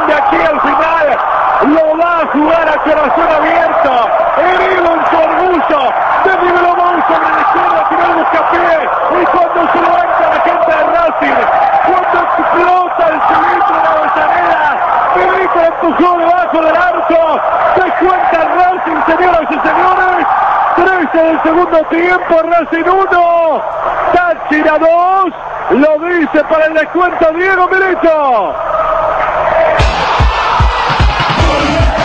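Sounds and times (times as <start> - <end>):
man commentating fast on radio: 0.0 - 28.6, 29.8 - 32.0.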